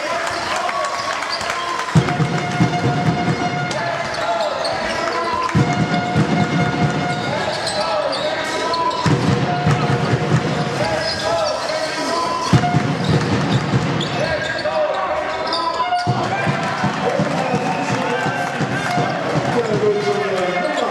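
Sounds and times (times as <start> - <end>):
voices in a hall: 0.0 - 20.9.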